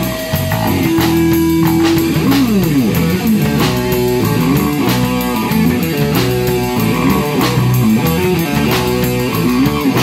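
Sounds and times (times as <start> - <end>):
bass guitar: 0.0 - 10.0
distorted electric guitar: 0.0 - 10.0
drum kit: 0.0 - 10.0.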